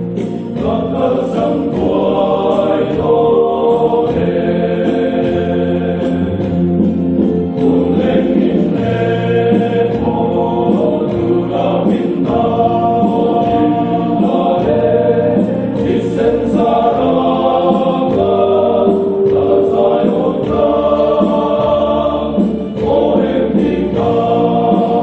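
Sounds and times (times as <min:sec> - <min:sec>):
men's choir singing: 0:00.0 - 0:25.0.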